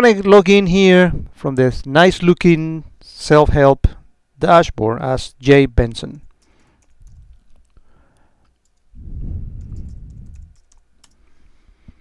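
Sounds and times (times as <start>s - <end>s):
computer keyboard typing: 6.4s - 8.9s, 9.5s - 11.2s
low muffled noise: 8.9s - 10.7s.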